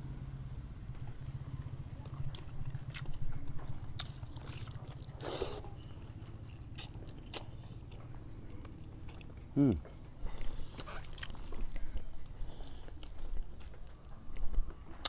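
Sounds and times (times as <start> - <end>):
steady low hum: 0.0 - 15.0
man chewing food: 1.0 - 15.0.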